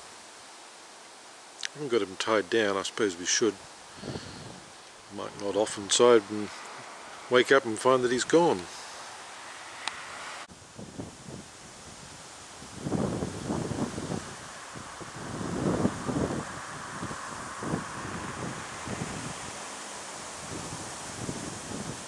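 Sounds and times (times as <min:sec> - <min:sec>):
rushing hiss of wind: 0:00.0 - 0:22.0
wind buffeting microphone: 0:03.6 - 0:22.0.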